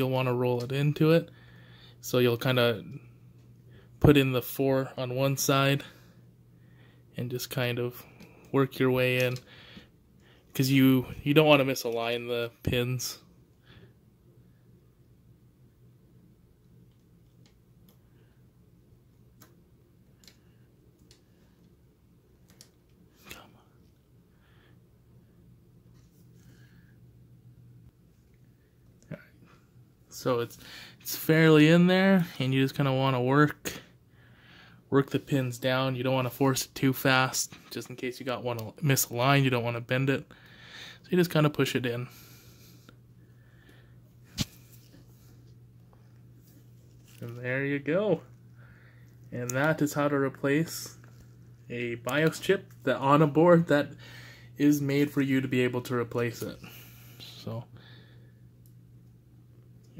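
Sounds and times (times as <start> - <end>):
steady low hum: 0.0 - 59.9.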